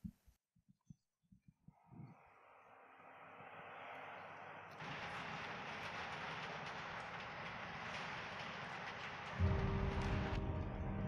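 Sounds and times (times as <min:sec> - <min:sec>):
dome shutter rolling with rattle: 0:04.8 - 0:10.4.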